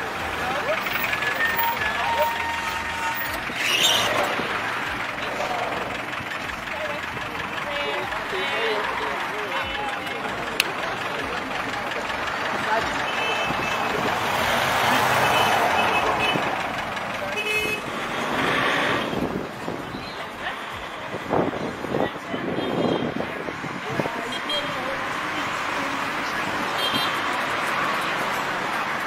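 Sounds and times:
people talking: 0:00.0 - 0:29.0
road traffic passing: 0:00.0 - 0:29.0.

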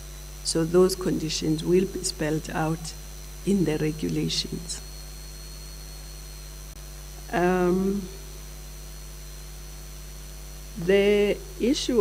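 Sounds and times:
electrical mains hum: 0:00.0 - 0:12.0
person speaking: 0:00.5 - 0:04.8.

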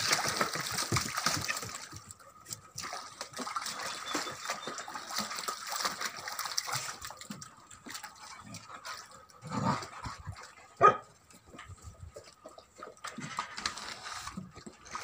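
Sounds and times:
puppies lapping and splashing water: 0:00.0 - 0:15.0.

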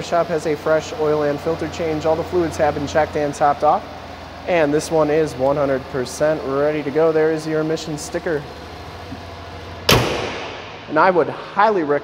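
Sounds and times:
car hood slamming shut: 0:09.9 - 0:10.9.

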